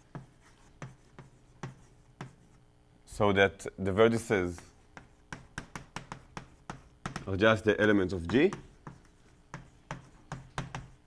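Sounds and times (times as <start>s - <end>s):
chalk writing on blackboard: 0.0s - 2.7s, 4.4s - 11.0s.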